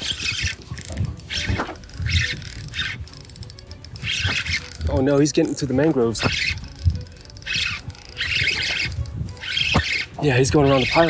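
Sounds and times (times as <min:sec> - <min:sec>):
fishing reel ratcheting clicks: 0:00.0 - 0:11.0.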